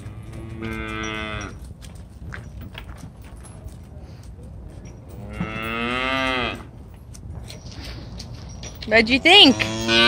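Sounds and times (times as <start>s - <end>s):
cow mooing: 5.2s - 6.7s, 9.5s - 10.0s.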